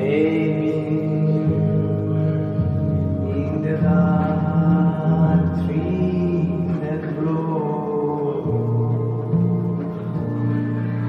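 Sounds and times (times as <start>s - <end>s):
electronic keyboard chords: 0.0s - 11.0s.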